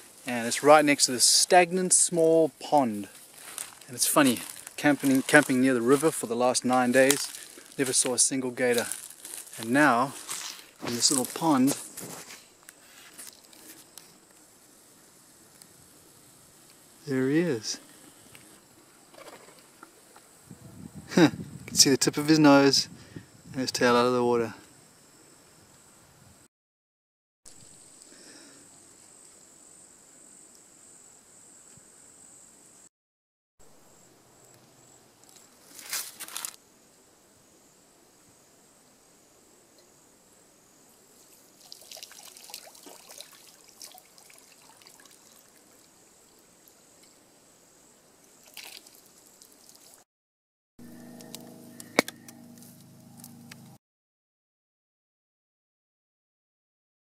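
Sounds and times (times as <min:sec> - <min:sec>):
high insect buzz: 0:00.0 - 0:21.6, 0:33.8 - 0:50.0, 0:50.8 - 0:53.8
water trickling: 0:41.4 - 0:46.8, 0:48.3 - 0:50.0
water splash: 0:41.6 - 0:45.6, 0:48.4 - 0:50.0
low steady hum: 0:50.8 - 0:53.8.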